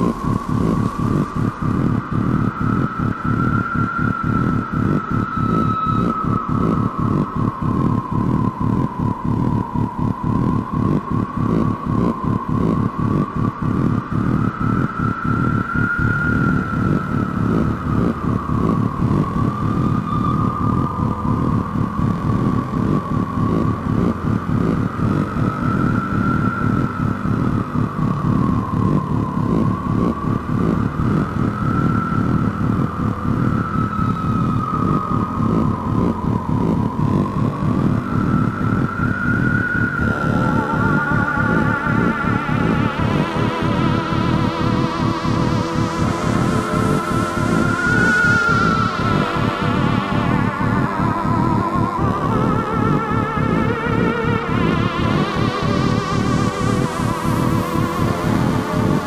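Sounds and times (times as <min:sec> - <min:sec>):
high wavering synth tone: 0:00.0 - 0:59.0
pulsing low synth drone: 0:00.0 - 0:59.0.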